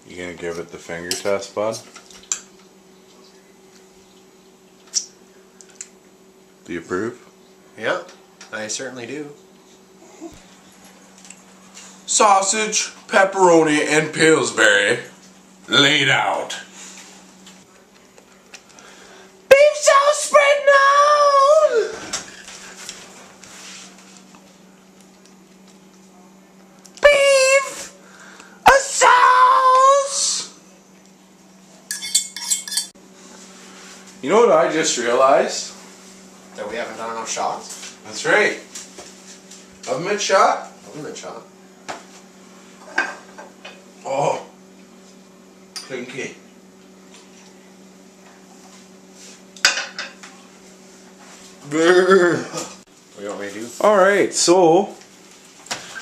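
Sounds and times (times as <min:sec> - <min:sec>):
long wavering vocal cries: 0:28.6 - 0:30.5.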